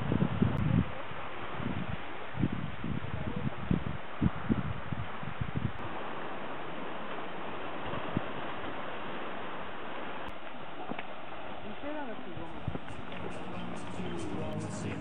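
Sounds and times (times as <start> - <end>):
sea surf against rocky shore: 0.0 - 15.0
person speaking: 12.3 - 15.0
music: 12.8 - 15.0.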